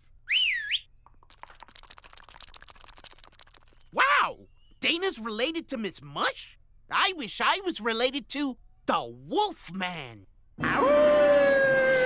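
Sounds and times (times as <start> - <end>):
high wavering whistle: 0.0 - 1.0
faint rapid clicking: 1.0 - 3.9.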